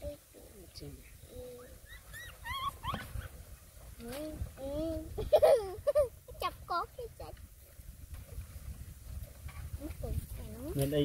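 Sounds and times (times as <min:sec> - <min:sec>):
puppy whining: 0:01.6 - 0:03.4.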